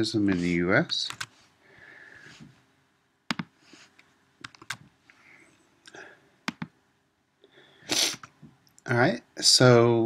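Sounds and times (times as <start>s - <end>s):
person sniffing or sneezing: 7.7s - 8.3s.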